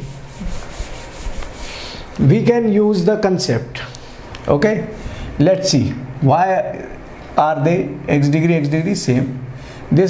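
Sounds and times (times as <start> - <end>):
duster scrubbing a chalkboard: 0.0 - 2.1.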